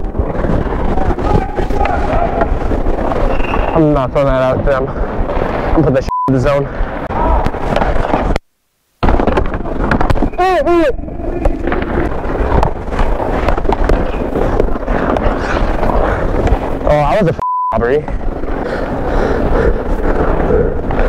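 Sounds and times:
skates scraping on ice: 0.0 - 6.0, 7.3 - 8.4, 11.3 - 17.3, 18.1 - 21.0
hockey sticks and puck clacking: 0.1 - 3.8, 11.4 - 16.8.

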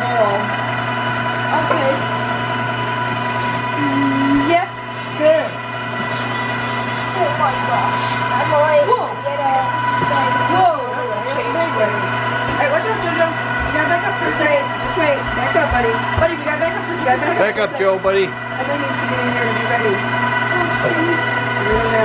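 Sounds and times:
electric meat grinder running: 0.0 - 22.0
children and adults talking: 7.0 - 22.0.

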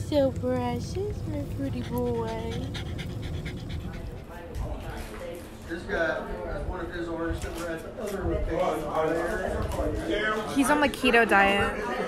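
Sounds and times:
dog panting: 0.4 - 5.0.

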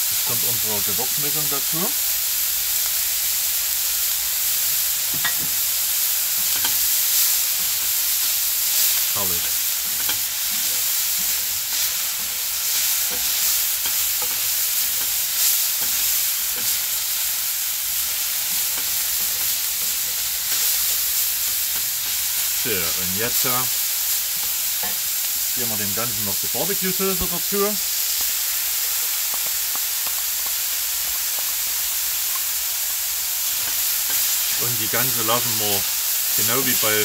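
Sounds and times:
meat sizzling in a frying pan: 0.0 - 37.0.

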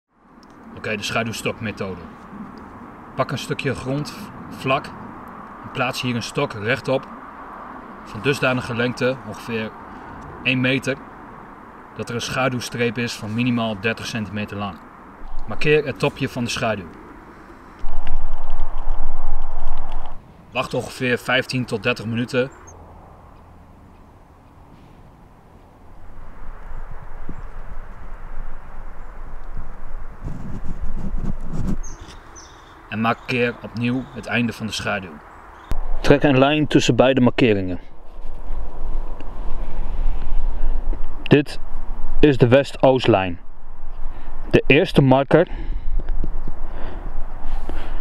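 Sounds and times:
wind rumble on microphone: 14.9 - 20.2, 24.6 - 32.6, 35.6 - 48.0
low rumble: 15.2 - 15.8, 17.8 - 20.2, 25.8 - 31.8, 35.7 - 37.0, 43.3 - 44.6
scraping on dry pine needles: 26.0 - 32.8, 37.9 - 42.0.

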